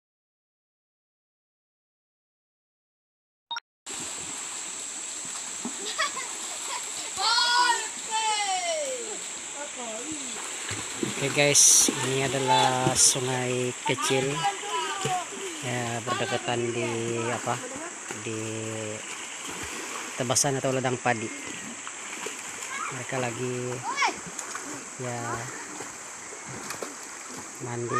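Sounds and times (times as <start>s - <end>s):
children splashing in water: 5.3s - 20.3s, 21.1s - 27.9s
child shouting: 5.9s - 9.2s, 14.3s - 16.5s, 22.7s - 23.0s, 23.8s - 24.2s.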